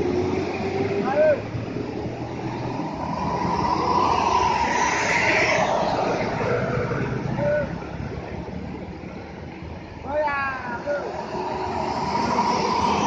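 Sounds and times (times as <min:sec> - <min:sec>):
bus driving past: 0:00.0 - 0:10.0, 0:10.6 - 0:13.0.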